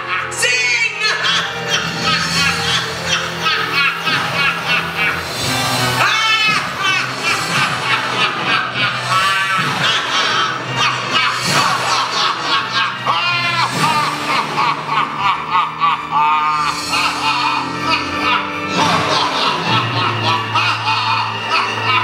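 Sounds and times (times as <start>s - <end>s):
music with shrill squawking calls: 0.0s - 22.0s.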